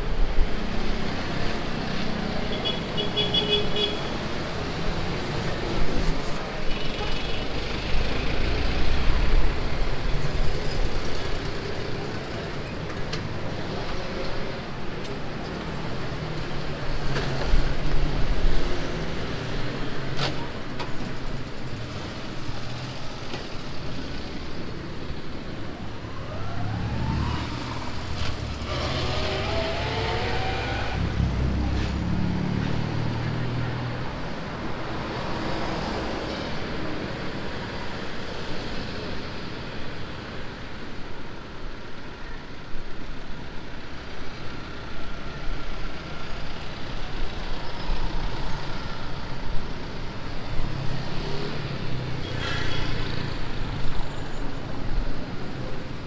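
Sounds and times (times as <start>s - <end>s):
steady traffic noise: 0.0s - 56.0s
vehicle passing close by: 26.6s - 33.8s.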